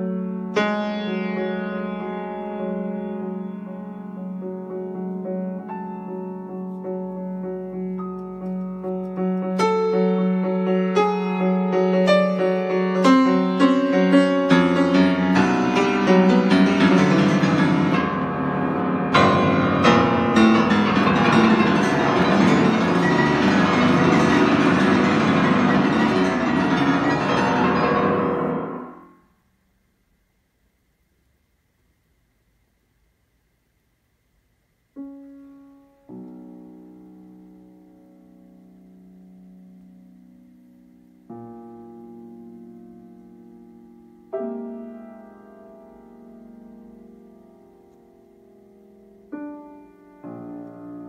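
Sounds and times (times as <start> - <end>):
soft piano notes: 0.0 - 29.3, 35.0 - 51.0.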